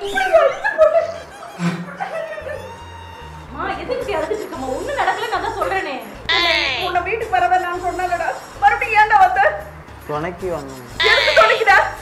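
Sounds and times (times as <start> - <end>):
background music: 0.0 - 12.0
high wavering bleat-like cry: 2.4 - 8.9, 10.6 - 12.0.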